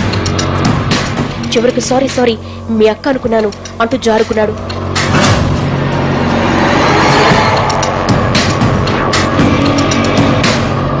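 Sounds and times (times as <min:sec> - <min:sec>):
tense background music: 0:00.0 - 0:11.0
low steady drone: 0:03.6 - 0:11.0
dramatic noise swell: 0:04.6 - 0:11.0.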